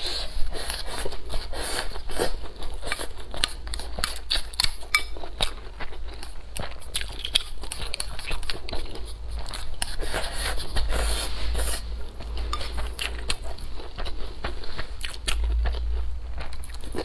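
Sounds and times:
chewing and biting food: 0.0 - 17.0.

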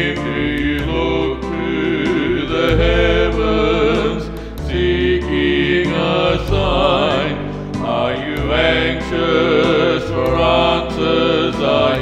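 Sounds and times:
low musical accompaniment: 0.0 - 12.0
person singing with vibrato: 0.0 - 12.0.

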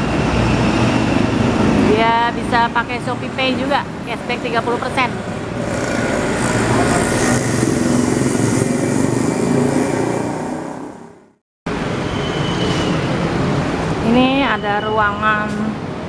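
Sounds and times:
motor vehicle passing: 0.0 - 11.4
steady background noise: 0.0 - 16.0.

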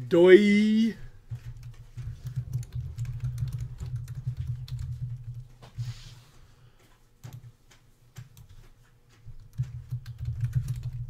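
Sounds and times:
typing on computer keyboard: 1.3 - 5.6, 7.2 - 8.7, 9.3 - 11.0.

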